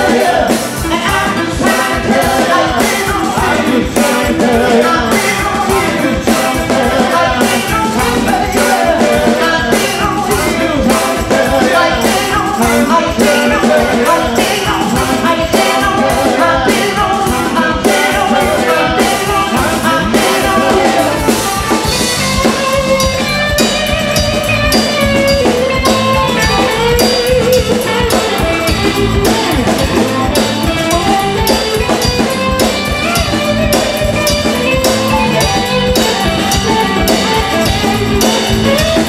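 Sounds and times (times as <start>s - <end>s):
drum kit beat: 0.0s - 39.0s
electric bass: 0.0s - 39.0s
electric guitar: 0.0s - 39.0s.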